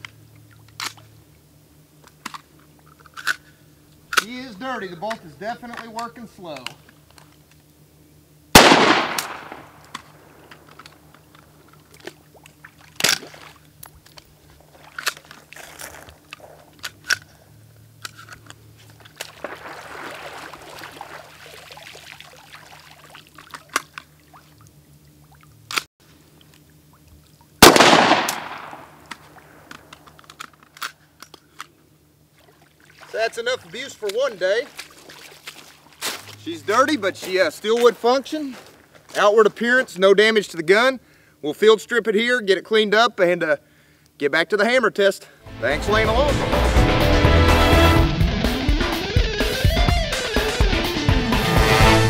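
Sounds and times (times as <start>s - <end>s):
rifle shots echoing: 8.6s - 10.5s, 19.4s - 20.6s, 27.6s - 29.7s
rifle action clicking: 8.6s - 10.9s, 27.6s - 31.7s
rifle splashing through water: 8.6s - 10.9s, 11.9s - 15.6s, 19.1s - 24.6s, 27.6s - 29.7s, 32.4s - 36.3s
sharp small crack: 8.6s - 11.0s, 13.0s - 13.4s, 19.1s - 20.6s, 27.6s - 31.0s.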